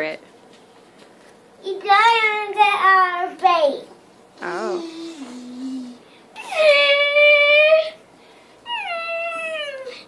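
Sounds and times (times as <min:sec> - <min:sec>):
puppy whining: 0:08.6 - 0:10.0.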